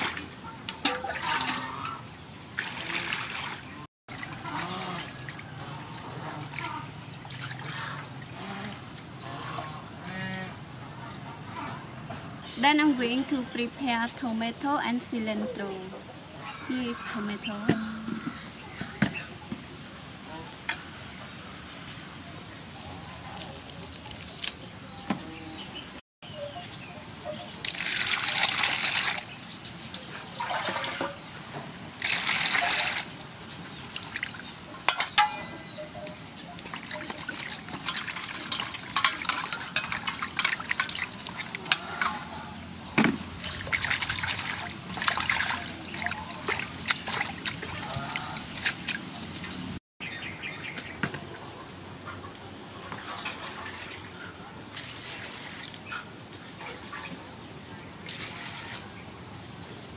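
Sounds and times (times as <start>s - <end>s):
hands splashing washing vegetables: 2.6s - 5.4s, 7.2s - 9.4s, 27.6s - 31.2s, 32.0s - 33.2s, 36.6s - 42.4s, 43.1s - 49.7s
water pouring into metal basin: 27.6s - 29.4s, 32.0s - 33.2s, 36.6s - 42.4s, 43.4s - 48.5s.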